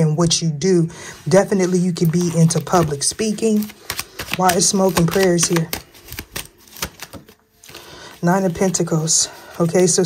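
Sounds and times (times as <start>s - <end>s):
cards flicked and drawn: 2.1s - 7.8s.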